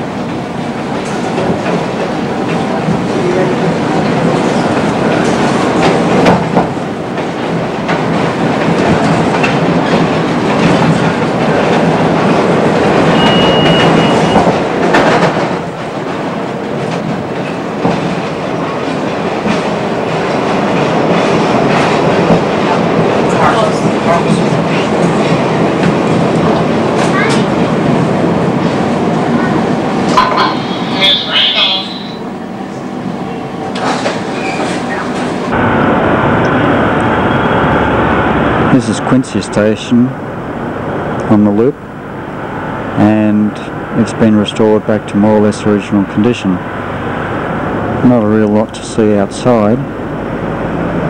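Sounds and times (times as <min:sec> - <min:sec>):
train wheels clattering over rails: 0:00.0 - 0:30.7, 0:33.6 - 0:35.5
short high steady tone: 0:30.2 - 0:32.2.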